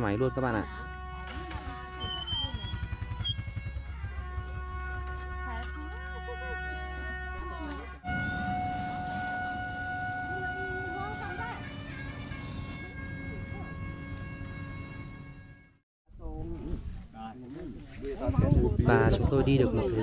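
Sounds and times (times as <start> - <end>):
horn playing long held notes: 0.0 - 15.8
motorbike engine hum: 0.7 - 6.2, 8.1 - 15.2
people chattering: 9.9 - 14.0, 17.4 - 20.0.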